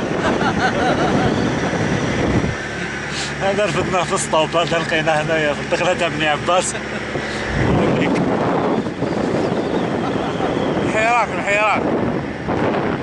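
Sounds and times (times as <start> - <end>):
car running noise: 0.0 - 13.0
wind buffeting microphone: 0.0 - 13.0.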